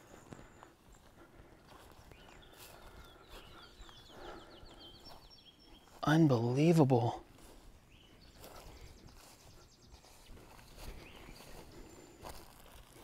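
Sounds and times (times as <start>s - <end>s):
footsteps in grass: 0.0s - 13.0s.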